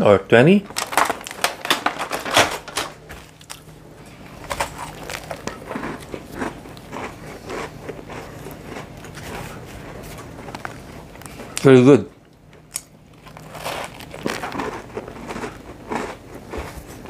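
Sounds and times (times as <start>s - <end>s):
person chewing crunchy rusk: 3.2s - 11.7s, 12.6s - 17.0s.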